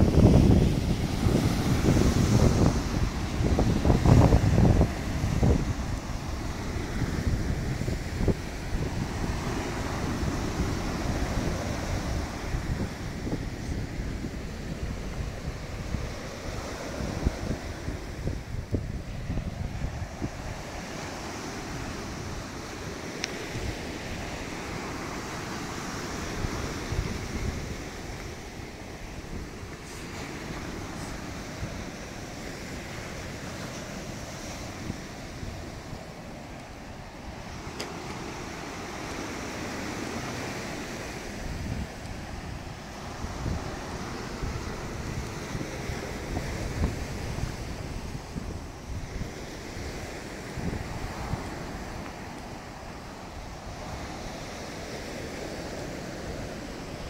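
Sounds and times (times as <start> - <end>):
waves breaking on a beach: 0.0 - 57.0
wind buffeting microphone: 0.0 - 57.0.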